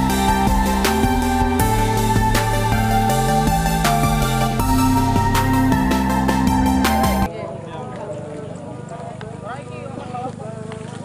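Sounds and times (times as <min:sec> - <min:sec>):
rapid low pulsing: 0:00.0 - 0:07.3.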